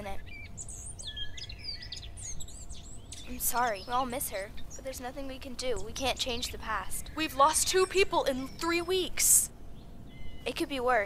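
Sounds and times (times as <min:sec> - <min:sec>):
low background rumble: 0:00.0 - 0:11.0
small birds chirping: 0:00.0 - 0:11.0.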